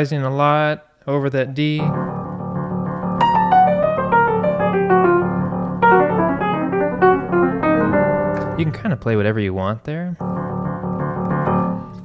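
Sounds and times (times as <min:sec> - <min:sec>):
upright piano playing: 0:01.8 - 0:09.4, 0:10.2 - 0:12.0.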